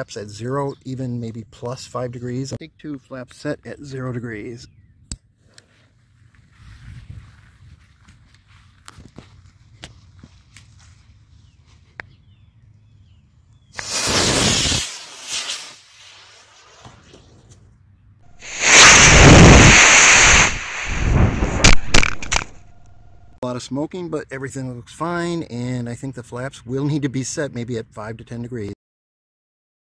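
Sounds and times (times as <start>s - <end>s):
rocket motor hissing: 13.8s - 16.6s, 18.3s - 22.5s
choppy rushing noise: 18.3s - 22.8s.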